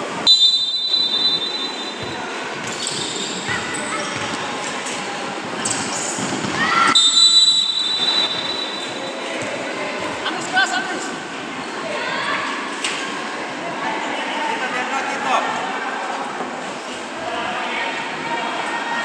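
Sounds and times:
referee's whistle blasts: 0:00.2 - 0:02.1, 0:06.9 - 0:09.0.

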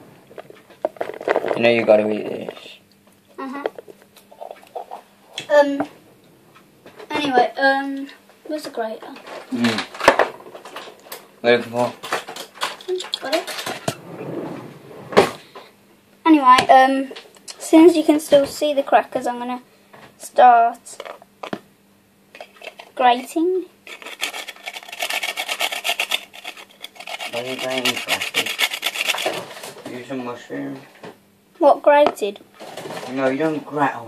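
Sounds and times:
food rasping on hand grater: 0:23.9 - 0:29.5.

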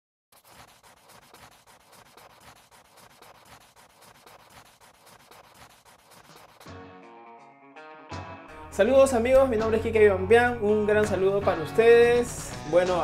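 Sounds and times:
pencil scribbling on paper: 0:00.3 - 0:06.7.

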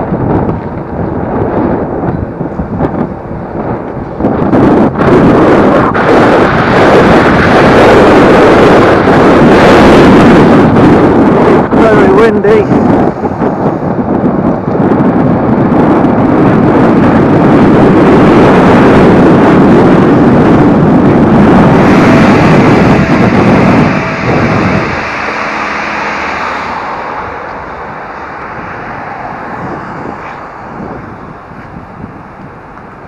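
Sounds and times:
road rumble: 0:00.0 - 0:33.0
wind rushing over microphone: 0:00.0 - 0:33.0.

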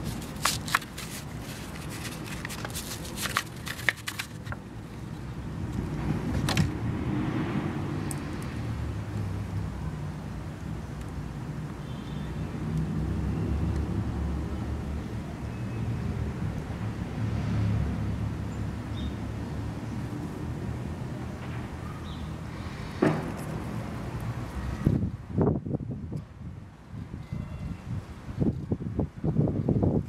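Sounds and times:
road traffic rumble: 0:00.0 - 0:30.0.

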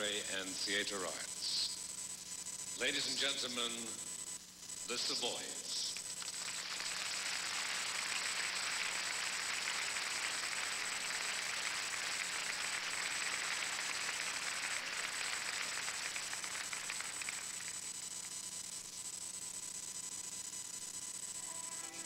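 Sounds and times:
audience applauding: 0:06.2 - 0:17.8.

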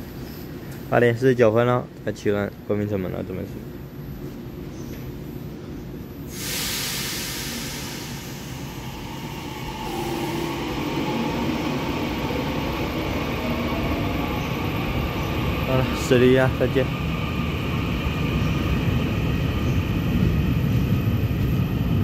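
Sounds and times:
train motor whine: 0:06.2 - 0:22.0
air hiss: 0:06.3 - 0:11.2
train running: 0:06.3 - 0:22.0.

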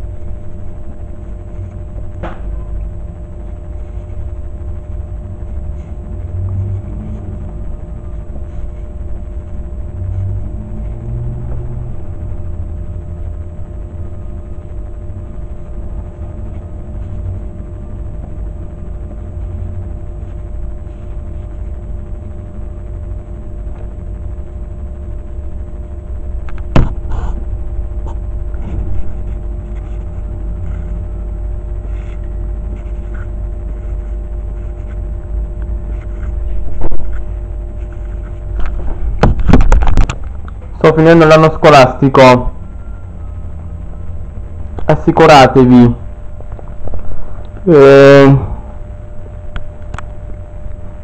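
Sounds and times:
faint hum: 0:00.0 - 0:51.0
steady low rumble: 0:00.0 - 0:51.0.

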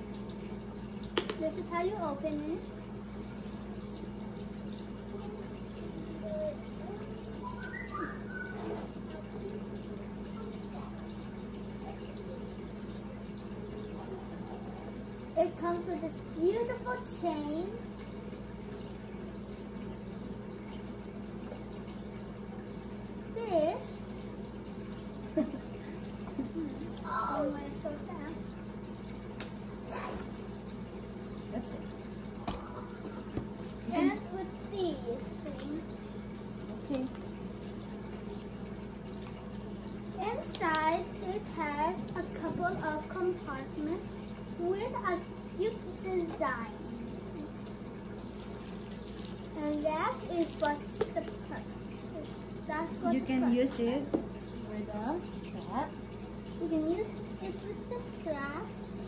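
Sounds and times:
low electrical hum: 0:00.0 - 0:59.0
faint small sounds: 0:00.5 - 0:53.0.

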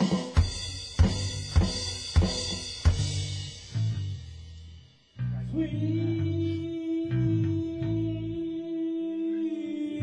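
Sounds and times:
drum kit playing a beat: 0:00.0 - 0:05.1
bass guitar low notes: 0:00.6 - 0:08.6.

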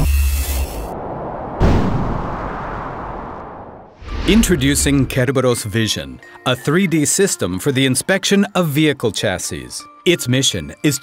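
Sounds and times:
low rumble: 0:00.5 - 0:05.2
deep cinematic boom: 0:00.9 - 0:05.2.

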